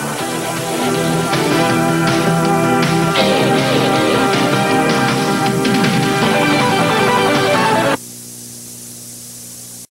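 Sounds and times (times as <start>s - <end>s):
tape hiss: 0.0s - 9.9s
low buzzing hum: 1.1s - 9.9s.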